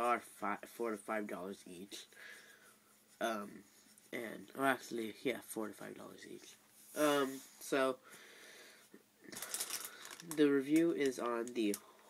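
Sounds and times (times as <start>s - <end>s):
faint room hiss: 0.0s - 12.0s
person breathing in: 8.0s - 10.2s.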